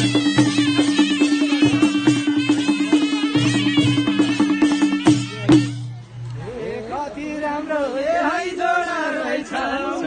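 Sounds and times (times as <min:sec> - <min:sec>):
group singing folk song in unison: 0:06.5 - 0:10.0.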